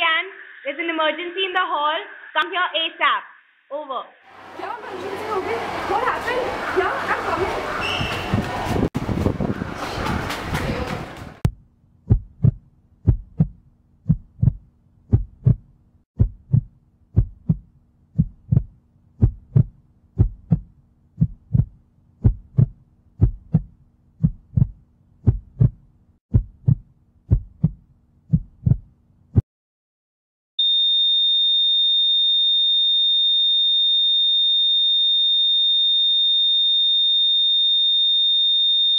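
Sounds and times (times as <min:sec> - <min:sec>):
noisy location sound: 0:04.3 - 0:11.5
heartbeat thumps: 0:08.0 - 0:29.4.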